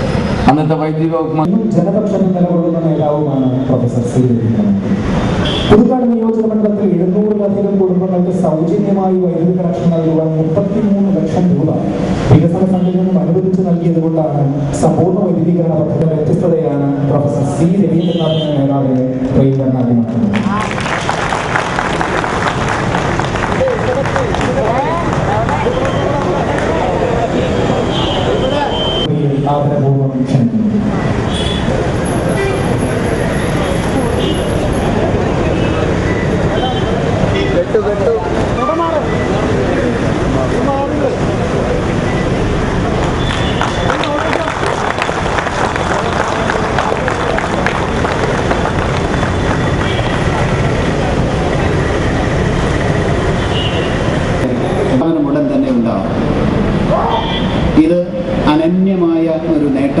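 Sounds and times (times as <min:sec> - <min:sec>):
steady background noise: 0:00.0 - 1:00.0
man speaking over loudspeakers: 0:00.4 - 0:20.6, 0:26.8 - 0:31.0, 0:36.6 - 0:41.3, 0:43.9 - 0:44.8, 0:54.4 - 1:00.0
crowd murmur: 0:20.0 - 0:29.2, 0:30.5 - 0:55.1.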